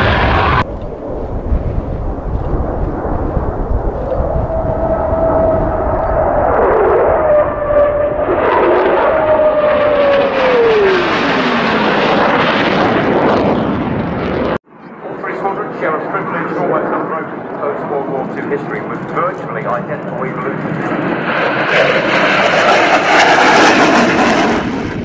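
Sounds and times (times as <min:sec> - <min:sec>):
fighter jet engines roaring: 0:00.0 - 0:25.0
jet engine whine: 0:00.0 - 0:25.0.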